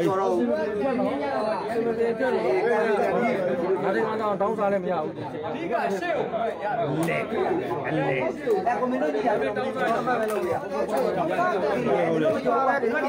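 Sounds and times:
chatter of people talking: 0.0 - 13.0.

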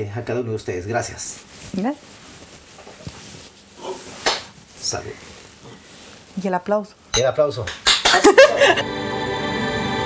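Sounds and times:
man laughing breathily: 8.2 - 8.8.

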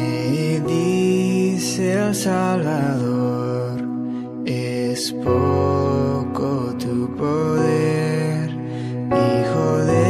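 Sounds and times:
man singing worship melody: 0.0 - 10.0
sustained piano chords: 0.0 - 10.0.

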